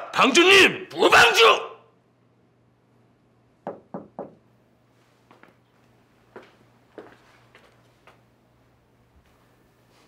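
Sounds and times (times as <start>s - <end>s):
knocking on a door: 3.6s - 4.4s.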